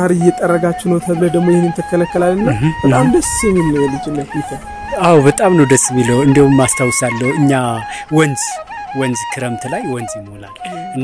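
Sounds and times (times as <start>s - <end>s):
steady stepped melody: 0.0s - 11.0s.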